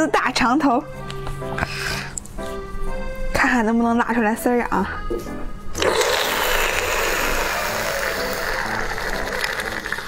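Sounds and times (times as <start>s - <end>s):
background music: 0.0s - 10.0s
wet biting and sucking: 5.8s - 10.0s.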